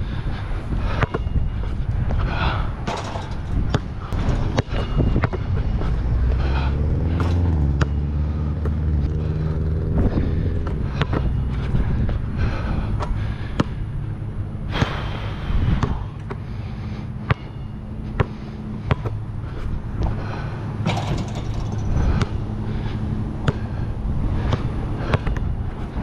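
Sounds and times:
wind buffeting microphone: 0.0s - 16.2s, 19.4s - 26.0s
basketball bouncing on hard court: 2.9s - 5.5s, 17.3s - 17.6s, 23.4s - 23.7s
passing vehicle engine droning: 3.2s - 14.7s, 16.1s - 26.0s.

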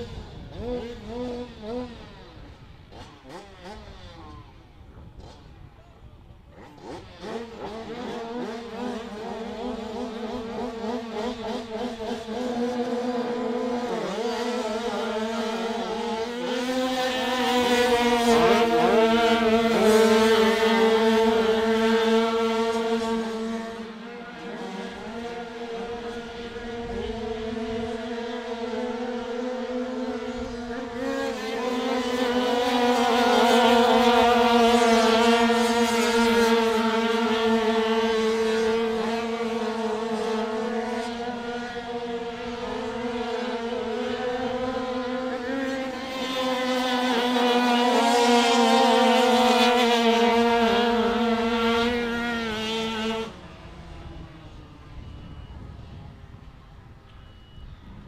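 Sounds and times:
two-stroke bike engines racing: 0.0s - 57.2s.

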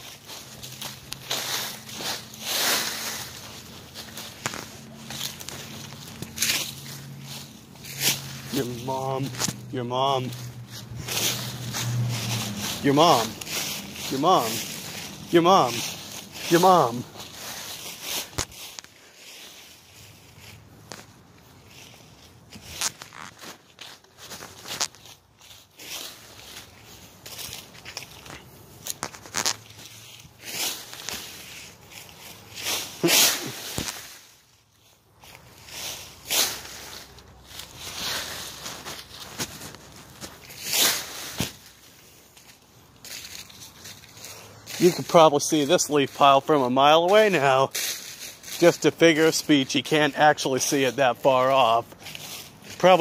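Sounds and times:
footsteps through dry leaves: 0.0s - 53.0s.

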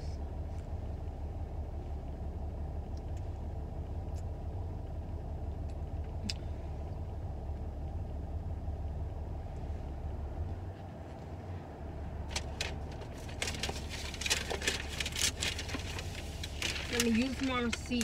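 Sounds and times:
car engine idling: 0.0s - 18.0s.

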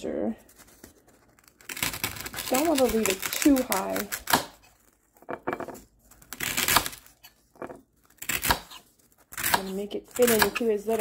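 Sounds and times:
floral foam scraping ceramic: 0.4s - 11.0s.

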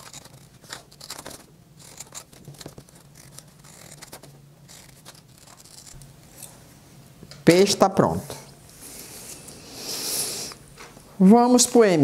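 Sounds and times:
scissors snipping paper: 0.0s - 6.0s.

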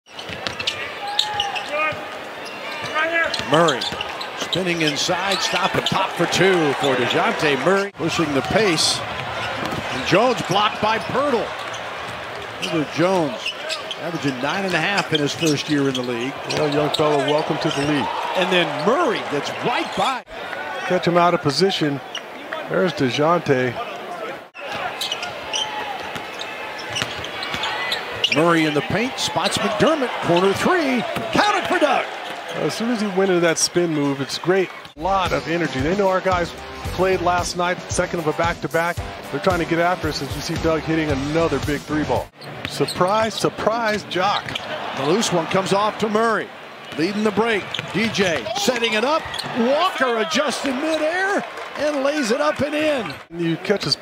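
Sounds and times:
shoe squeaks: 0.1s - 6.0s, 12.6s - 18.1s, 24.6s - 28.8s, 42.3s - 43.6s, 46.9s - 51.2s
arena crowd noise: 0.1s - 54.0s.

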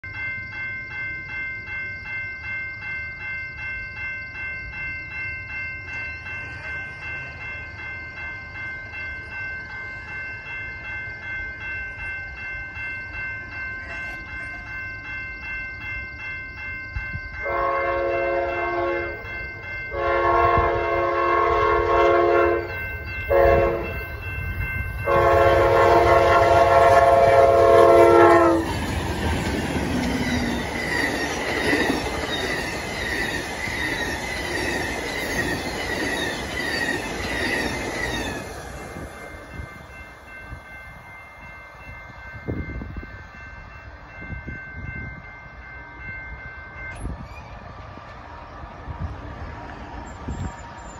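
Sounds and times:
train wheel noise: 0.0s - 50.9s
locomotive horn blasts: 17.4s - 19.2s, 19.9s - 24.0s, 25.0s - 28.7s
wheels clacking over rail joints: 25.3s - 39.8s.

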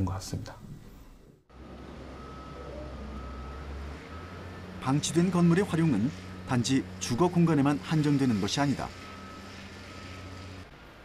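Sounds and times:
faint high beep: 2.2s - 4.6s.

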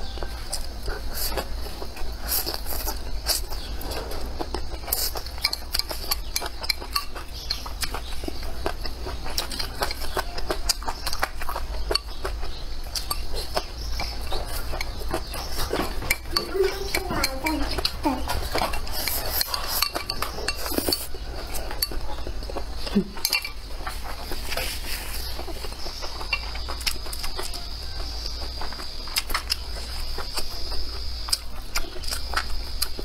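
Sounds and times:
utensils clinking against bowl: 4.8s - 8.1s, 14.0s - 23.9s.

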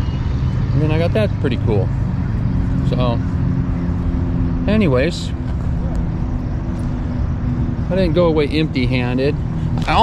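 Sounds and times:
low hum: 0.0s - 9.9s.

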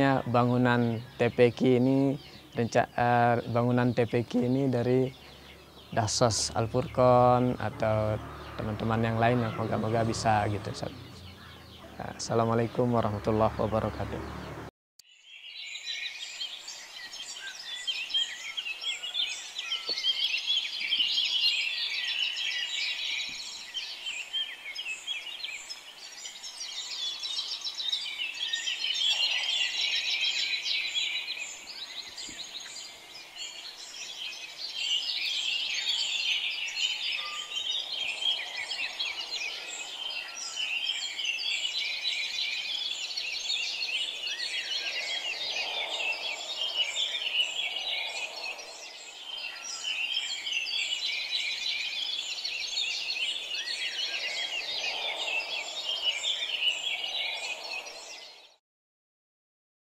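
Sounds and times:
birds chirping: 0.0s - 14.7s, 15.3s - 58.6s.

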